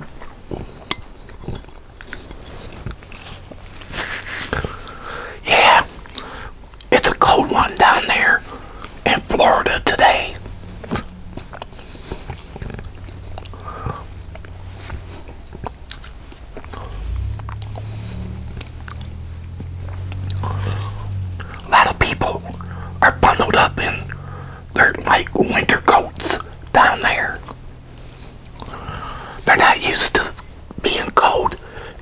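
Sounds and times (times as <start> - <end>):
chewing with wet clicks: 0.0 - 3.9, 6.0 - 7.2, 10.8 - 21.7, 24.8 - 31.9
low steady hum: 0.0 - 32.0.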